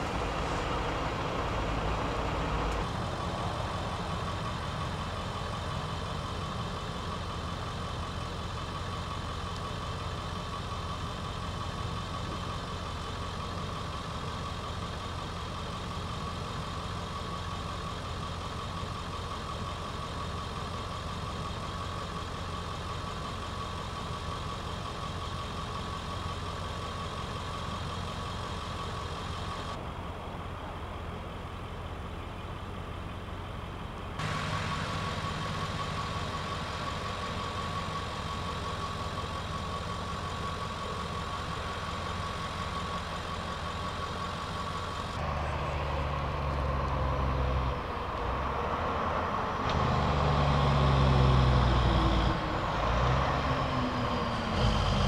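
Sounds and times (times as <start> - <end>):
vehicle engine idling: 0.0 - 55.0.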